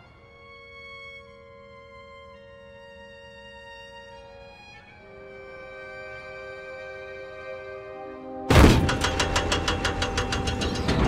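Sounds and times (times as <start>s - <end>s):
heavy machine engine clattering: 8.5s - 11.0s.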